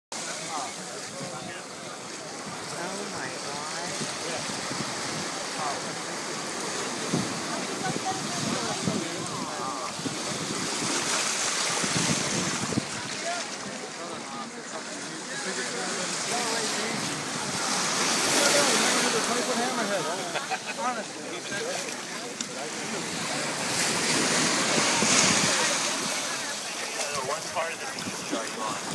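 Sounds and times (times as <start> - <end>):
shallow surf splashing: 0.1 - 28.9
wind on microphone: 2.4 - 13.2, 23.0 - 26.5, 27.1 - 28.9.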